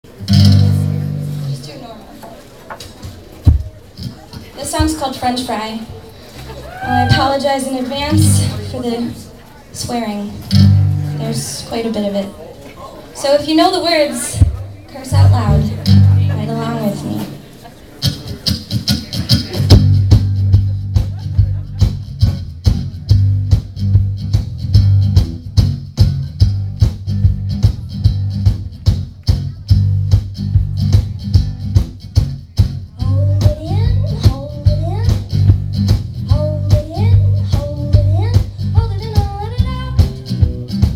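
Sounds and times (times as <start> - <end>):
strummed guitars: 0.0 - 12.3, 13.4 - 40.9
bass line: 0.1 - 1.6, 8.0 - 8.9, 10.5 - 11.6, 14.4 - 17.3, 19.1 - 40.9
low bass and guitar chord: 0.1 - 1.7, 15.1 - 17.2
drum kit steady beat: 2.9 - 6.0, 14.3 - 17.2, 18.0 - 40.9.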